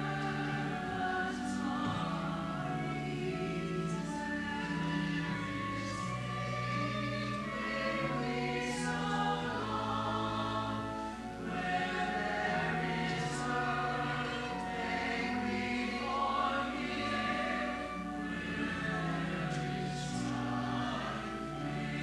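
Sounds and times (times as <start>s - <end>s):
church choir singing: 0.0s - 22.0s.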